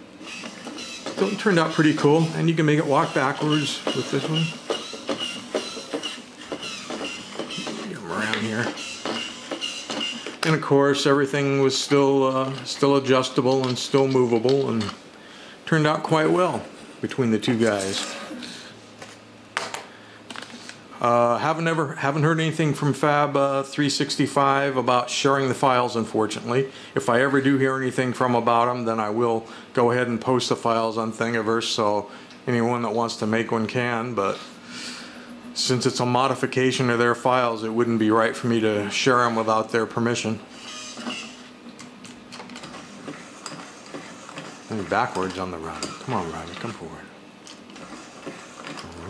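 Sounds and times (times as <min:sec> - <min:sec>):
toy robot motor whir: 0:00.2 - 0:11.1, 0:40.5 - 0:41.5, 0:42.3 - 0:46.9, 0:47.5 - 0:49.0
plastic legs clicking on table: 0:03.0 - 0:10.6.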